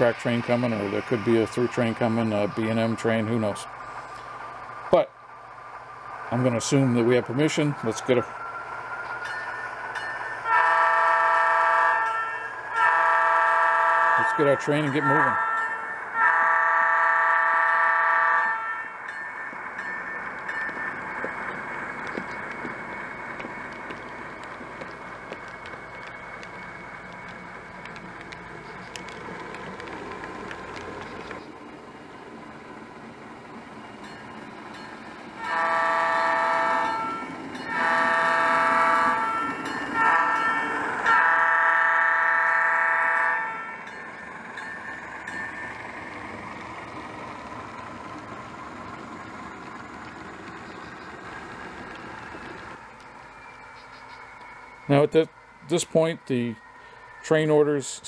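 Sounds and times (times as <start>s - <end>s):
locomotive running sound: 0.0s - 58.0s
model locomotive horn: 10.4s - 19.0s, 35.4s - 43.8s.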